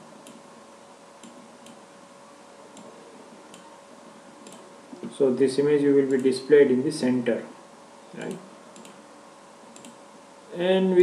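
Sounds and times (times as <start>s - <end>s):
microphone hiss: 0.0s - 11.0s
faint mouse clicks: 4.4s - 5.2s, 8.2s - 9.0s, 9.7s - 10.0s.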